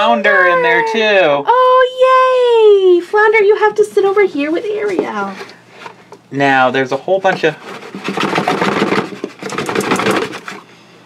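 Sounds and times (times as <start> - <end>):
cardboard box crackling and scraping: 7.4 - 10.4.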